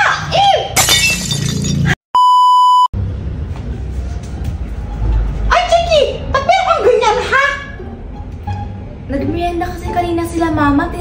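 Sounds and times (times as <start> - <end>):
glass shattering: 0.8 - 2.0
electronic beep: 2.2 - 2.9.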